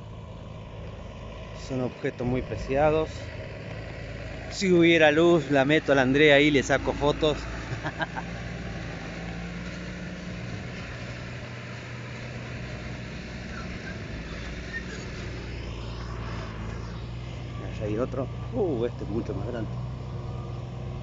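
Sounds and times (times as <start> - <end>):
outdoor background noise: 0.0 - 21.0
vehicle engine idling: 0.0 - 21.0.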